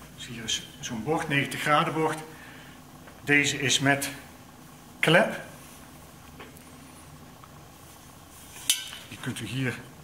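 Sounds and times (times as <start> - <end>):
faint hum: 0.0 - 10.0
metallic clink: 8.6 - 9.1.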